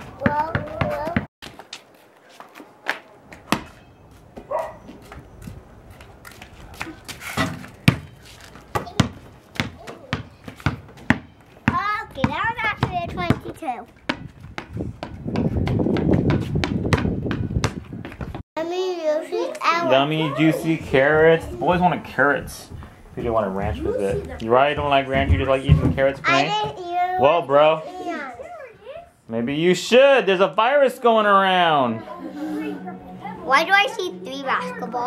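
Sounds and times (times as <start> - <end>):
low rumble: 31.9 - 35.0.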